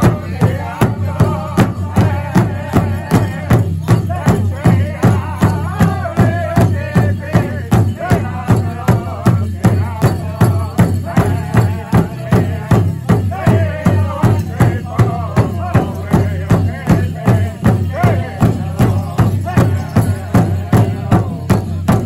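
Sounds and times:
large drum steady beat: 0.0s - 22.0s
singers chanting together: 0.0s - 22.0s.

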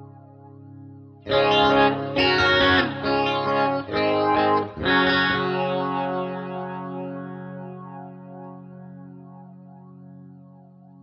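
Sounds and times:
electric guitar chords with flanger: 0.0s - 11.0s.

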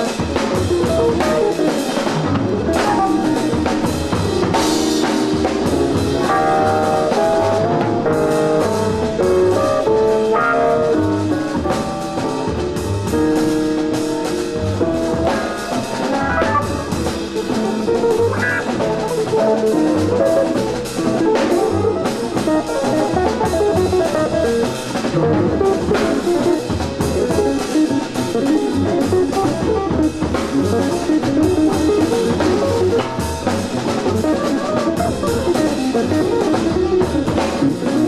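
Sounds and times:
drums: 0.0s - 38.0s
live jazz band: 0.0s - 38.0s.

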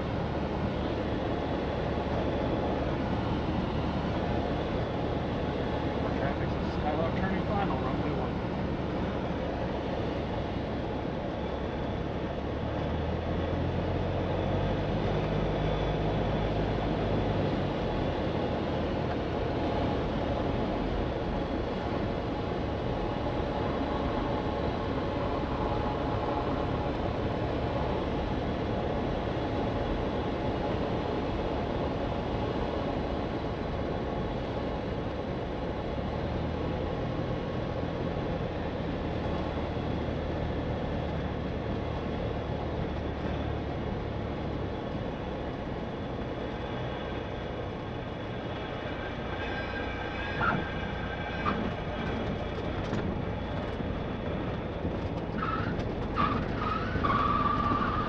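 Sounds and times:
propeller plane engine droning: 0.0s - 58.0s.

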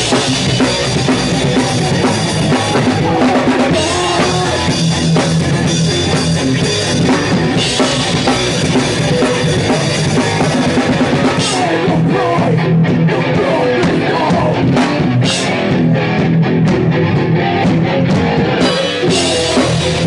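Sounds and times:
distorted electric guitar: 0.0s - 20.0s
pounding drum kit: 0.0s - 20.0s.

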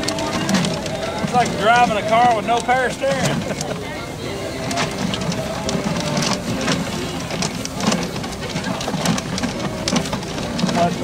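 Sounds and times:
plastic drum clicks and knocks: 0.0s - 3.8s, 4.6s - 11.0s
crowd murmuring: 0.0s - 11.0s
paper tickets tumbling in drum: 0.0s - 11.0s.

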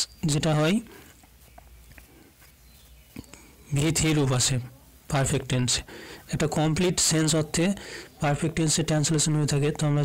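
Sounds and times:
person speaking: 0.0s - 1.3s, 3.1s - 10.0s.

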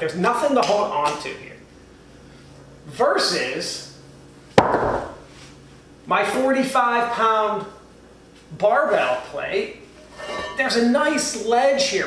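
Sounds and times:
weight plate dropped on rubber floor: 4.6s - 5.2s.

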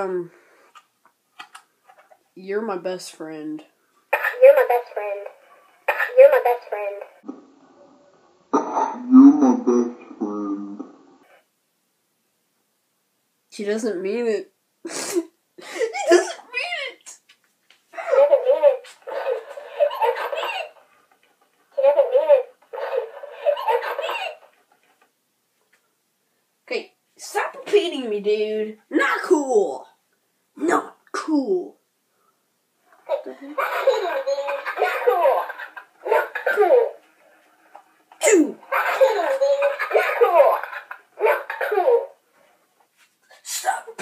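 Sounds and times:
talking toy repeating laughter: 21.8s - 24.6s, 33.6s - 37.0s, 38.7s - 42.1s.

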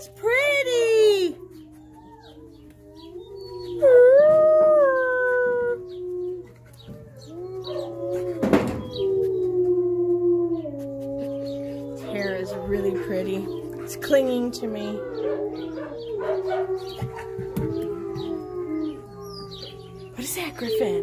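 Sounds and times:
wolves howling: 0.0s - 21.0s.

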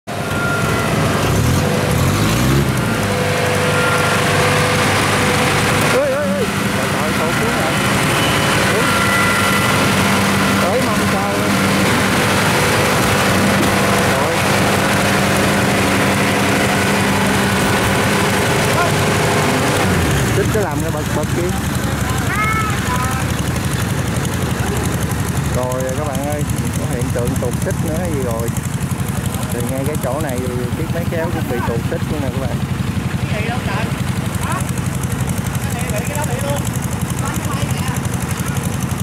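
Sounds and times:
diesel engine running: 0.0s - 39.0s.

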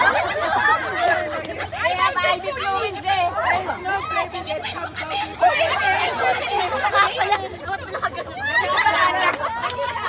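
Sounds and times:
group of people chattering: 0.0s - 10.0s.

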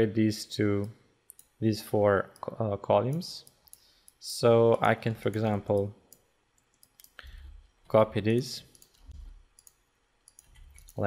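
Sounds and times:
computer mouse clicks: 0.8s - 1.6s, 3.1s - 4.2s, 4.8s - 7.7s, 8.7s - 11.0s.

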